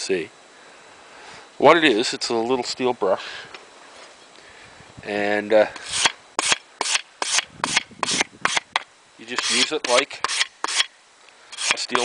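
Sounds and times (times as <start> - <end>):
wire brush scraping a steel file: 5.8 - 8.7, 9.3 - 10.9, 11.5 - 12.0.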